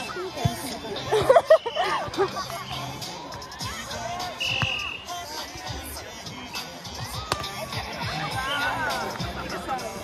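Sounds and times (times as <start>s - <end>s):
players shouting: 0.0s - 10.0s
high whistle: 4.4s - 5.2s
volleyball being struck: 7.2s - 7.6s.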